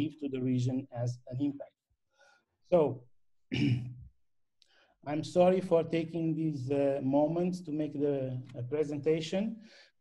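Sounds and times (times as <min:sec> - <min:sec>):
person clearing throat: 0:03.5 - 0:04.1.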